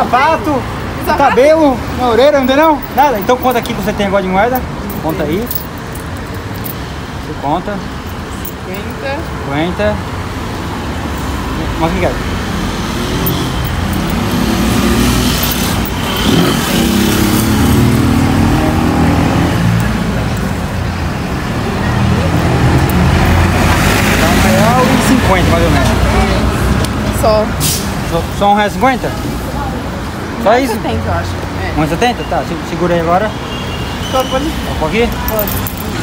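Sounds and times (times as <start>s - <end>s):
vehicle engines rumbling: 0.0s - 36.0s.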